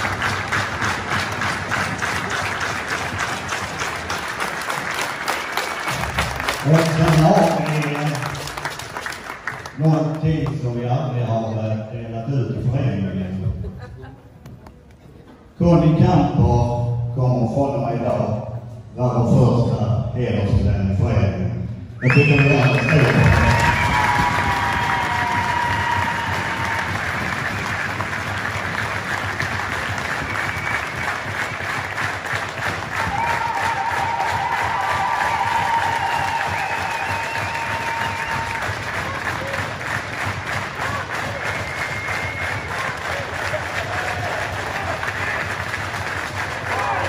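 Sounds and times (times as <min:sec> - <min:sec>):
crowd applause: 0:00.0 - 0:10.6, 0:22.0 - 0:47.0.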